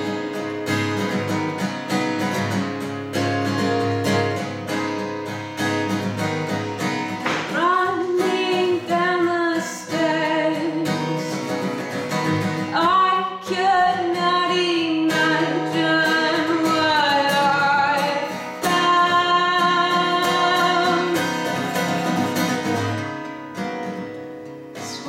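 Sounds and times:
strummed acoustic guitar: 0.0 - 25.0
woman singing: 7.4 - 22.0, 24.7 - 25.0.

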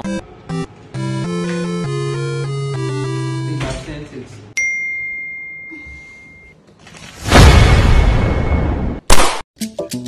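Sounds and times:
bell-like ding: 4.6 - 6.6.

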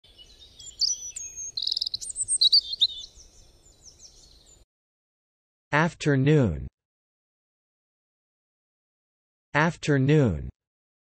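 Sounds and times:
birdsong chirps and trills: 0.0 - 4.6.

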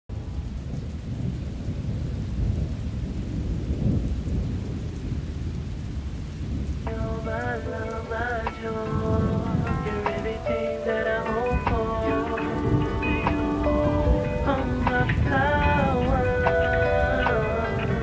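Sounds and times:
thunder: 0.1 - 7.0
rain: 0.1 - 18.0
melodic line with pitch bends: 6.9 - 18.0.

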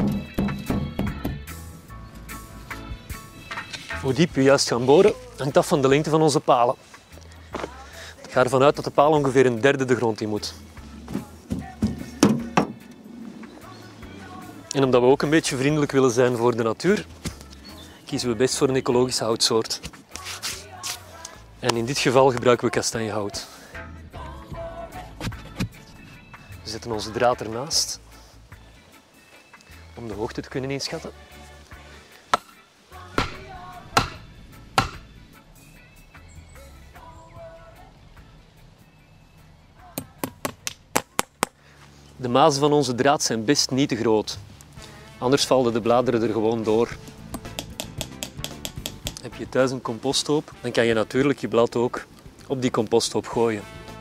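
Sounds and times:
auger knocking on metal wheelbarrow: 11.1 - 12.8
hammer striking staple into wood: 34.0 - 34.2, 34.8 - 35.0, 47.3 - 49.2.

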